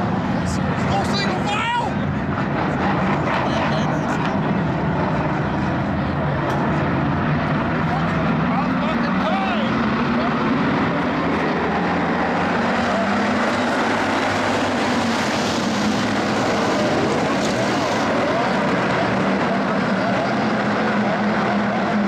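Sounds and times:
race car engines droning: 0:00.0 - 0:22.0.

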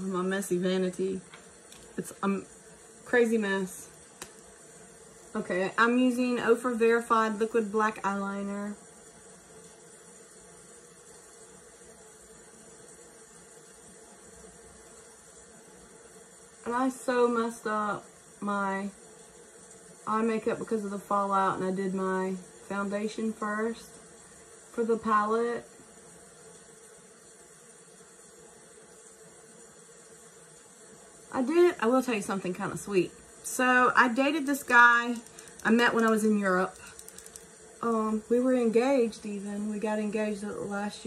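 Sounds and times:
faint steady hiss: 0:00.0 - 0:41.0.

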